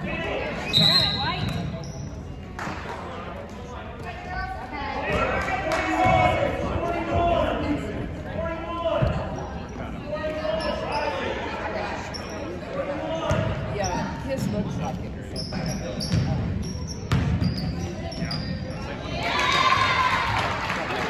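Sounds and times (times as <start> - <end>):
voices of spectators and players: 0.0 - 21.0.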